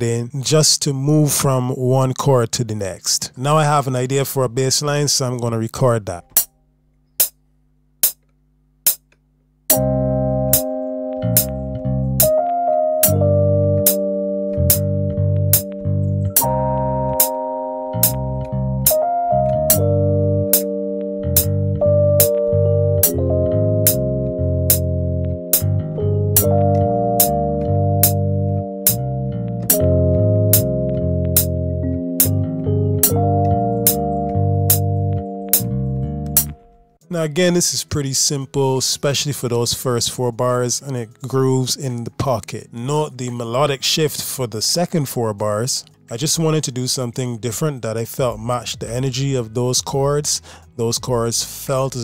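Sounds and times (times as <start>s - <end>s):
metronome clicks: 6.3s - 7.4s, 8.0s - 36.9s
electric bass line: 8.9s - 37.4s
electric piano chords: 9.7s - 37.0s.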